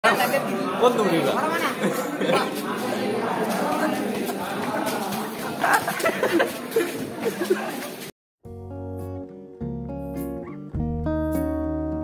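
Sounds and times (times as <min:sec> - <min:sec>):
people talking over one another: 0:00.0 - 0:08.1.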